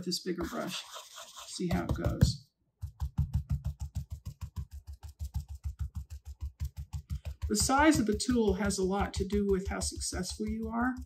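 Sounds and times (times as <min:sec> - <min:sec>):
stencil brush tapping: 0:00.4 - 0:11.0.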